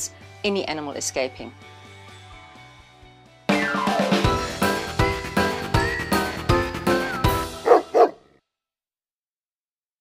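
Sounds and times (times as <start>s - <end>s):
music with steady beat: 3.5s - 7.7s
dog barking: 7.6s - 8.3s.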